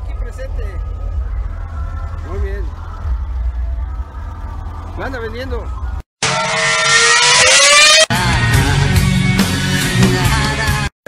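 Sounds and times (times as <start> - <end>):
engine revving: 6.2 - 9.5.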